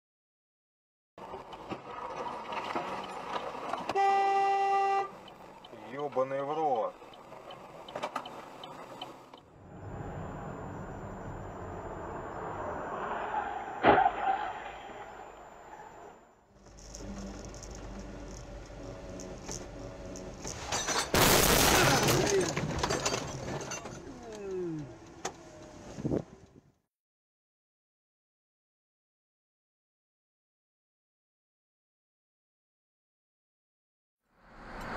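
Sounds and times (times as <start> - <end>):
road noise: 1.2 - 26.8, 34.3 - 34.9
car crash: 9.6 - 16.2, 20.4 - 24.1.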